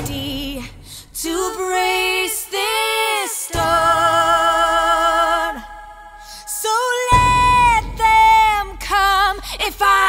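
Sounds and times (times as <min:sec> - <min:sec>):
woman singing lofi song: 0:00.0 - 0:10.0.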